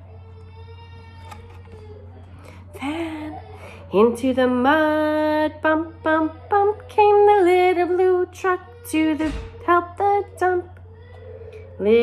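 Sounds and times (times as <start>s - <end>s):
cardboard page turning: 1.2s - 2.0s.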